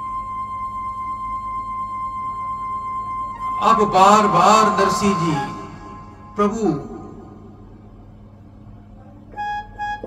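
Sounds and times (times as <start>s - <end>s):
low steady hum: 0.0s - 10.0s
harmonium held notes: 1.2s - 7.5s.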